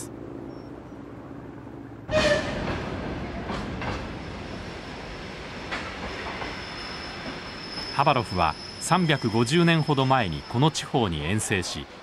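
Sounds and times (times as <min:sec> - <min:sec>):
electric locomotive and train passing: 0:00.0 - 0:12.0.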